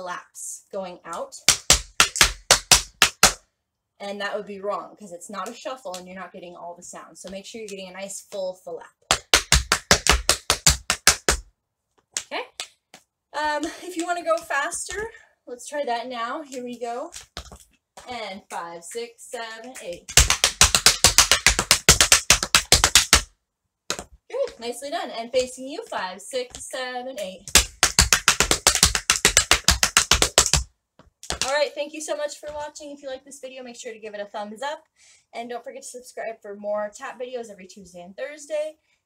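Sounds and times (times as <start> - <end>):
tap shoes on wooden board: 1.5 - 3.4, 9.0 - 12.3, 17.1 - 19.0, 19.7 - 23.3, 23.9 - 24.6, 27.4 - 31.5.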